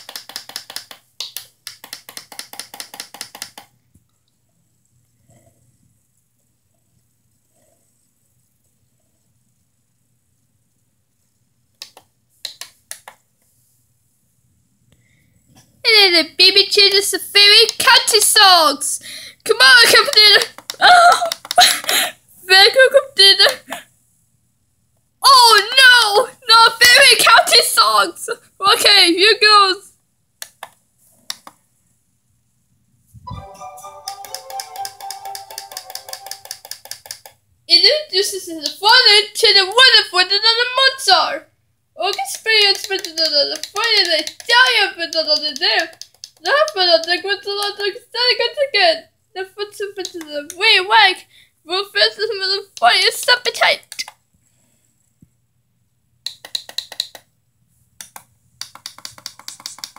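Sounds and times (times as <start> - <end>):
children's music from television: 33.3 - 36.7.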